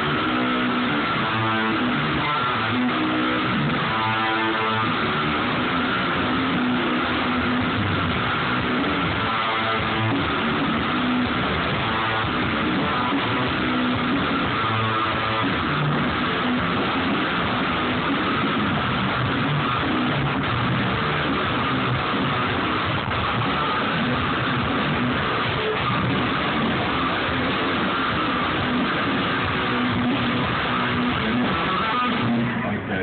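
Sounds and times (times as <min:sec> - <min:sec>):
loud electric guitar: 0:00.0 - 0:33.0.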